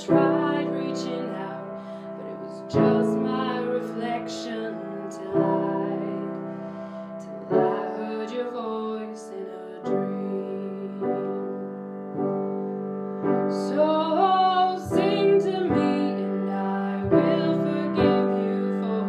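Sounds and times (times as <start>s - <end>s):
grand piano chords: 0.0s - 19.0s.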